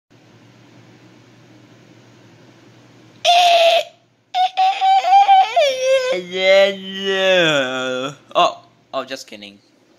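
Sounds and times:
short high-pitched cry: 3.2s - 7.5s.

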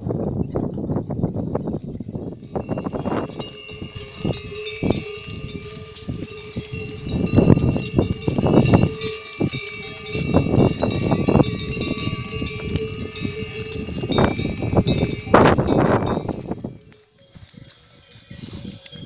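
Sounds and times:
animal bells ringing: 2.3s - 19.0s.

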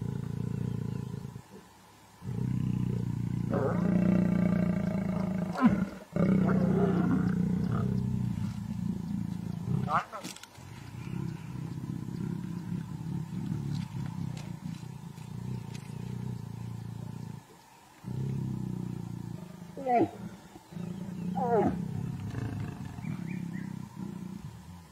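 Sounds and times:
lions growling: 0.0s - 1.6s, 2.2s - 24.9s
lion snarl: 2.2s - 24.9s.

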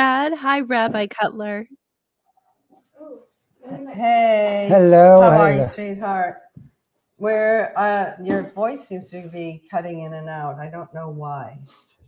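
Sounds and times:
garbled voice on video call: 3.0s - 5.9s.

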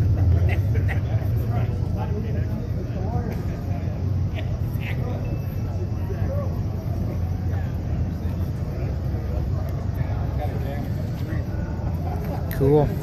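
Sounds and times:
vehicle engine rumbling: 0.0s - 13.0s.

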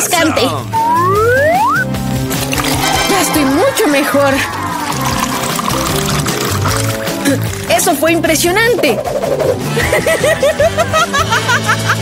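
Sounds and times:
background music: 0.0s - 12.0s
water splashing down: 2.3s - 9.3s.

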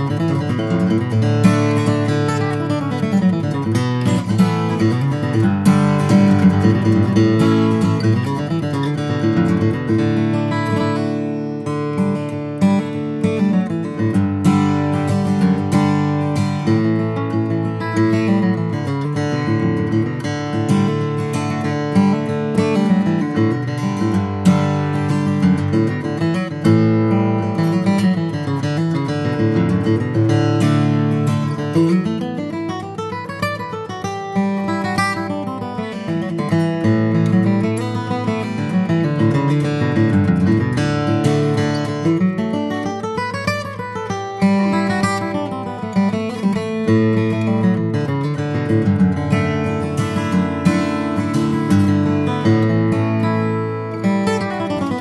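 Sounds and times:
acoustic guitar playing: 0.0s - 55.0s.

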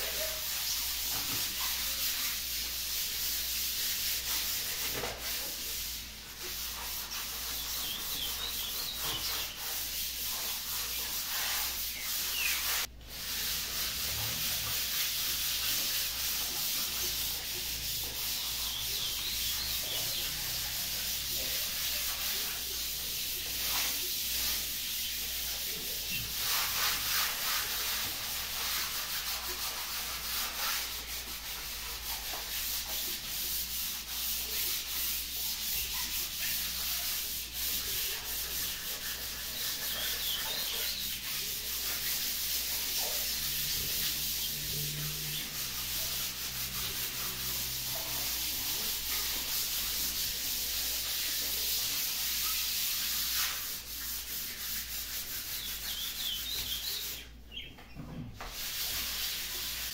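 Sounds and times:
sandpaper rubbing on walls: 0.0s - 57.6s, 58.4s - 59.9s.

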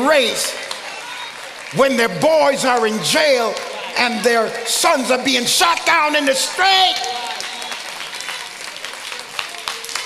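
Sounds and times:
congregation applauding: 0.0s - 10.0s.

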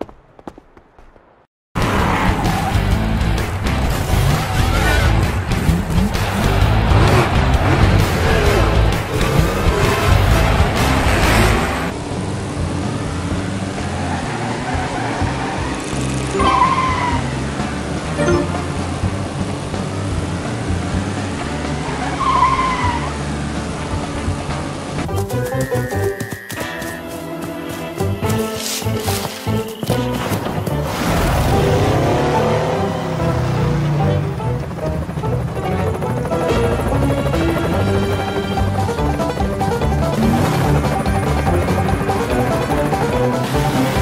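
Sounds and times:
race car engine revving: 1.8s - 25.1s, 39.2s - 44.0s
background music: 1.8s - 44.0s
tyre squeals: 25.3s - 30.4s.

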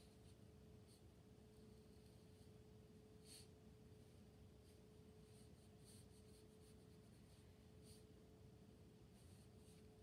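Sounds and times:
faint steady hum: 0.0s - 10.0s
brush strokes on paper: 3.2s - 8.1s, 8.7s - 10.0s.

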